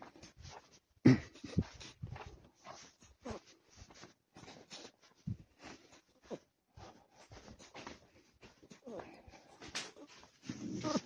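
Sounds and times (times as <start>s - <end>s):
dog panting: 1.4s - 11.0s.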